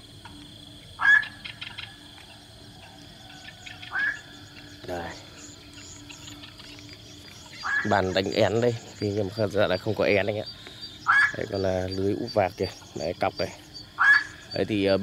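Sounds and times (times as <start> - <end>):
high insect drone: 0.0 - 15.0
rising bird calls: 0.0 - 15.0.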